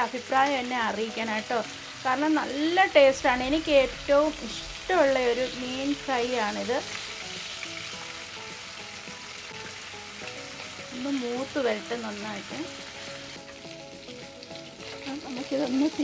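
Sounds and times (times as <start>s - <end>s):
fish sizzling in hot oil: 0.0s - 16.0s.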